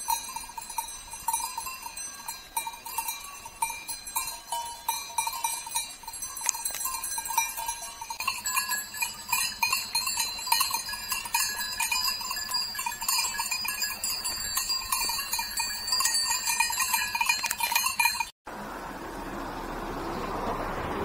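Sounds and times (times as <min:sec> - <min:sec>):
goat bells clanking: 0:00.0 - 0:18.4.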